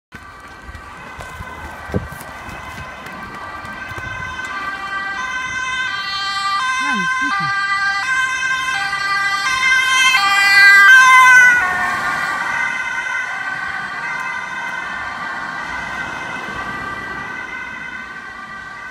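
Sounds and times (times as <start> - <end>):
two-tone police siren: 0.1 - 18.9.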